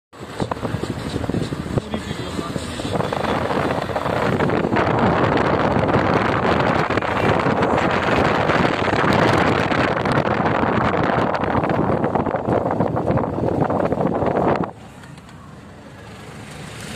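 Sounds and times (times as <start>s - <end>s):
road and wind noise in car: 0.1s - 16.9s.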